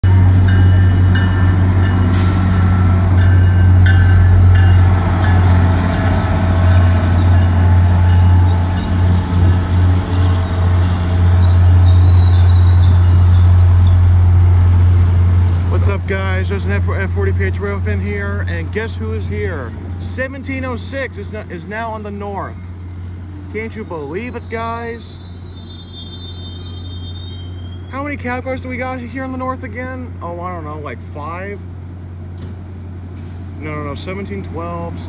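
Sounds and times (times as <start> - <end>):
electronic locomotive bell ringing: 0.0 - 9.8
diesel locomotive engine drone: 0.0 - 35.0.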